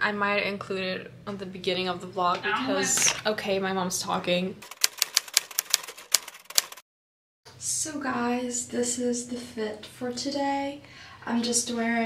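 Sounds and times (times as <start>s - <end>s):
rapid sharp clicks and taps: 4.6s - 6.8s.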